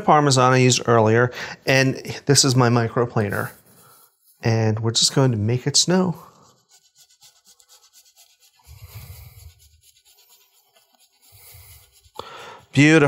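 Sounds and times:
cheese grating scrapes: 6.2 - 13.0.

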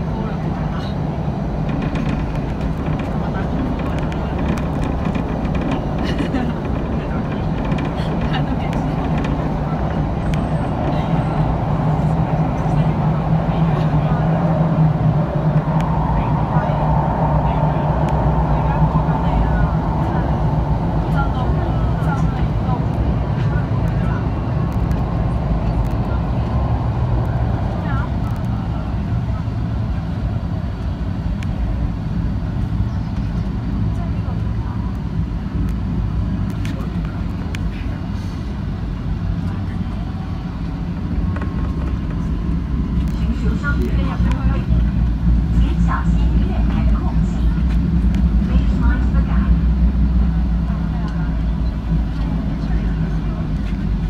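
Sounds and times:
metro train rumble: 0.0 - 54.0.

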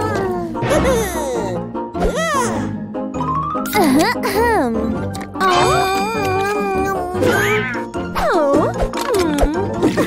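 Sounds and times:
light background music: 0.0 - 10.0.

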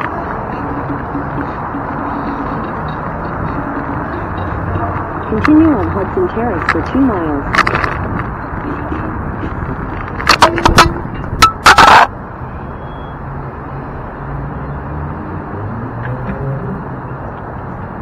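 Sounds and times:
wind and road noise: 0.0 - 18.0.

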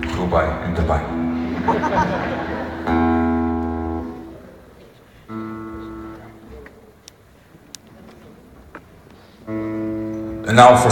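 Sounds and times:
faint clicks: 6.1 - 9.2.

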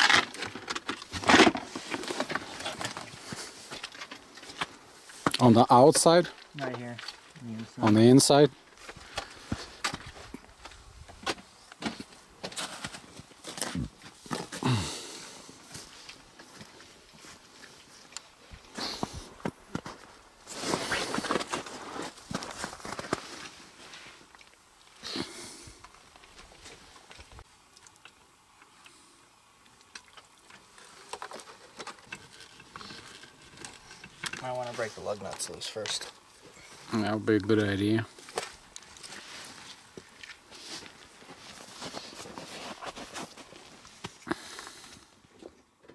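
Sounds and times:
footsteps in dry grass: 8.6 - 24.4, 38.1 - 45.0.

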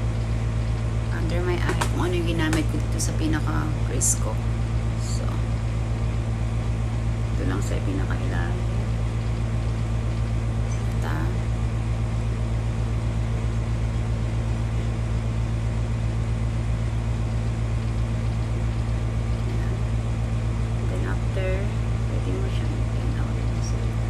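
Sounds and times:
loud low hum: 0.0 - 24.0.

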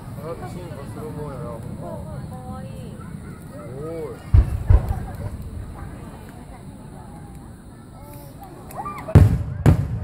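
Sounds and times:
firework shells booming: 4.2 - 6.6, 9.0 - 10.0.

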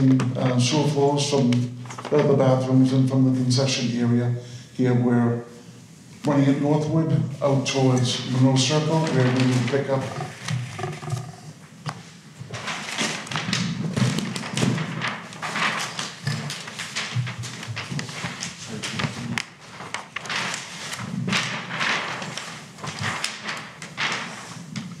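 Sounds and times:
large paper sheets rustling: 0.0 - 3.3, 7.4 - 11.5, 12.4 - 25.0.

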